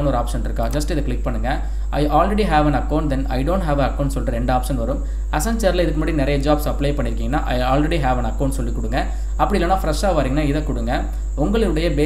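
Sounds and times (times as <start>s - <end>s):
faint high-pitched whine: 0.0s - 12.0s
man talking: 0.0s - 12.0s.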